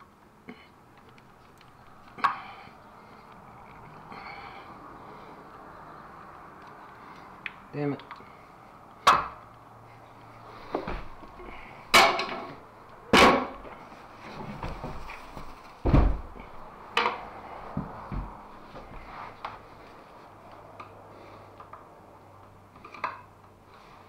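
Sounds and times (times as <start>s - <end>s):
hand tools knocking and clanking: 11.9s - 13.6s.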